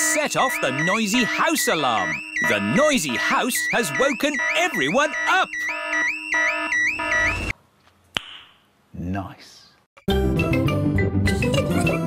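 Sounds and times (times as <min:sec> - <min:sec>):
electronic alarm warble: 0:00.0 - 0:07.5.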